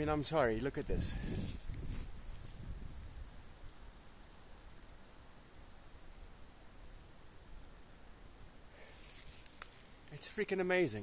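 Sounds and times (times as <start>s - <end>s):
steady rain falling: 0.0s - 11.0s
light ticks of raindrops: 0.2s - 11.0s.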